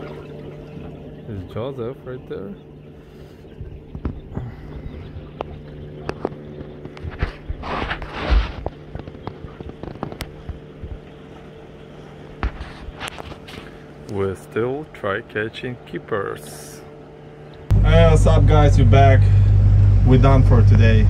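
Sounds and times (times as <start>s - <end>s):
boat motor humming: 0.0s - 21.0s.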